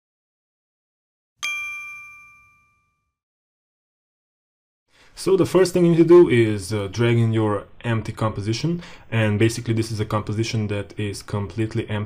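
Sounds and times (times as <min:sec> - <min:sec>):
bell-like ding: 0:01.4 - 0:03.2.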